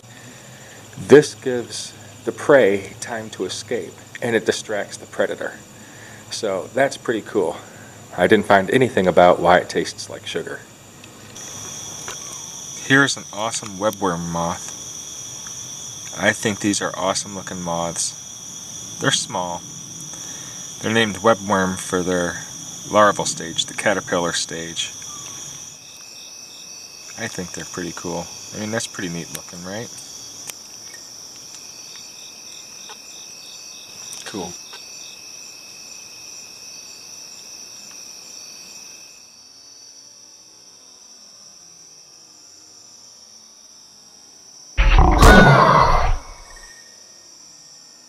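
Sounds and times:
insect chorus trilling: 0:00.0 - 0:48.0
sudden loud sound: 0:44.8 - 0:46.7.

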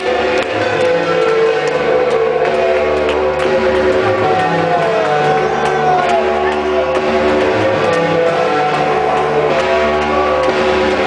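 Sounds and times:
loud dance music: 0:00.0 - 0:11.0.

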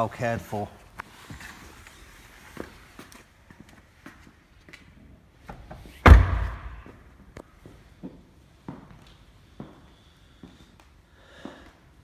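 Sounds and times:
car door shutting: 0:06.0 - 0:06.8.

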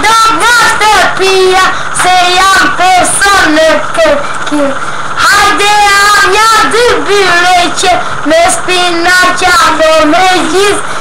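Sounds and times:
boy singing loudly: 0:00.0 - 0:10.9.

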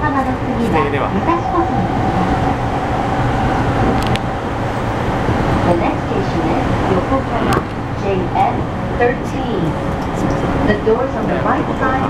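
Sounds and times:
steady train whine: 0:00.0 - 0:12.0
train wheels rumbling on rail: 0:00.0 - 0:12.0.

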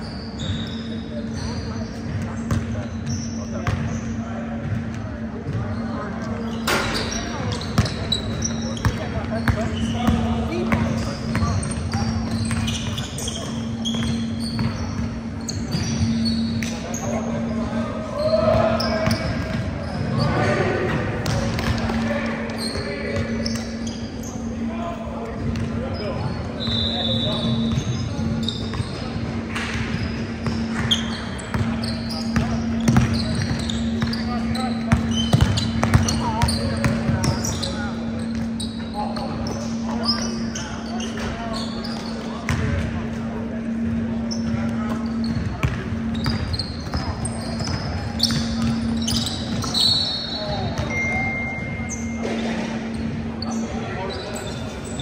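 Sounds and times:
sneaker squeaks: 0:00.0 - 0:55.0.

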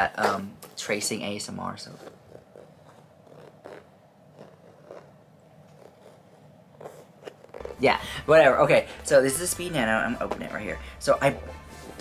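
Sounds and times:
fingertip scratching textured canvas: 0:01.9 - 0:07.9.

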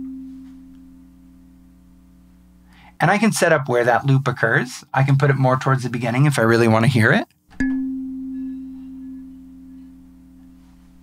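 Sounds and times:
sustained kalimba note: 0:00.0 - 0:02.2, 0:07.6 - 0:10.8.

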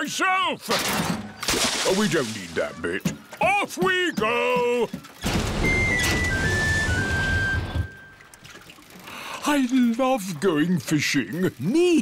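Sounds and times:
churning water and motor noise: 0:01.4 - 0:12.0.

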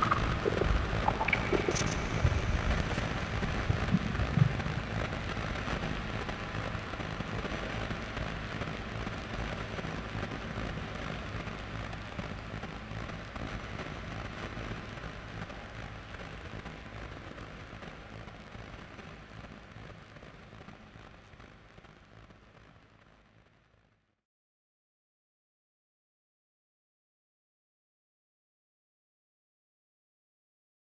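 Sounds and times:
ambient synthesizer music: 0:00.0 - 0:03.0
crackling noise texture: 0:00.0 - 0:24.2.

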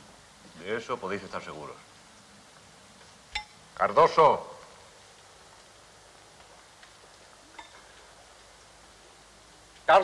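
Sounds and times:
steady hiss: 0:00.0 - 0:10.0.

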